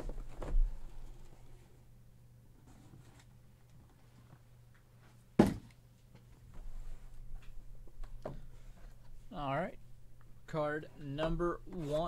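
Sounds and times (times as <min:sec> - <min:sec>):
rustling of cardboard boxes: 0:00.0 - 0:01.6
faint steady hum: 0:00.0 - 0:12.0
cardboard box thump: 0:05.4 - 0:05.7.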